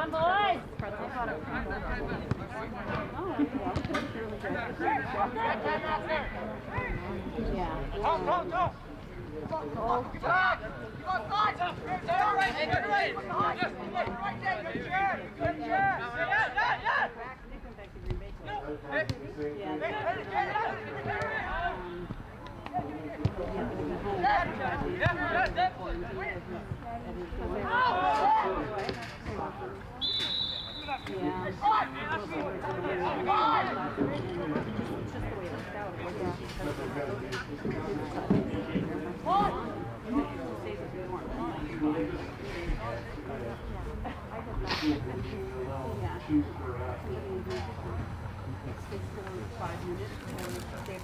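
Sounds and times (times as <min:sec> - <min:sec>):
general chatter: 0:00.0 - 0:51.0
people shouting and calling out: 0:09.5 - 0:17.4, 0:22.8 - 0:29.0.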